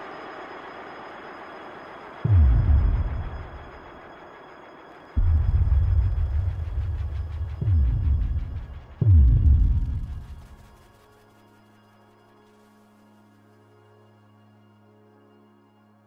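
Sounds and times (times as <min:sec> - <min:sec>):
deep cinematic bass booms: 0:02.3 - 0:03.7, 0:05.2 - 0:10.7
steady low rumble: 0:02.3 - 0:04.1, 0:05.2 - 0:11.0.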